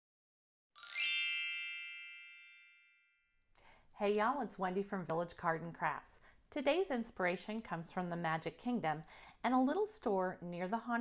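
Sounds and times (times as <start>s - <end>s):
bright chime ringing: 0.8s - 3.1s.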